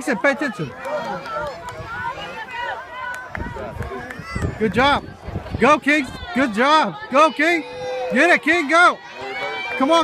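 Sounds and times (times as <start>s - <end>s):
chatter of spectators: 0.0s - 10.0s
children's voices: 6.9s - 8.2s.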